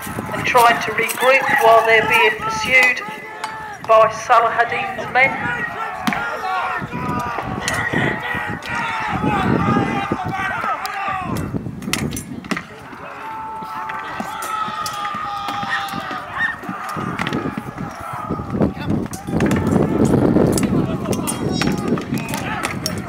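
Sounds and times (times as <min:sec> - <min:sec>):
people shouting and yelling: 0:00.0 - 0:23.0
long held cries: 0:13.0 - 0:20.2
weapons clacking on shields: 0:18.8 - 0:23.0.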